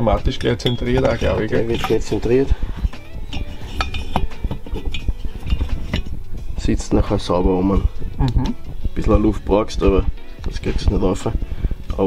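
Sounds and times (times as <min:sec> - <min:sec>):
metal cylinder clinking and knocking: 0:00.0 - 0:07.5.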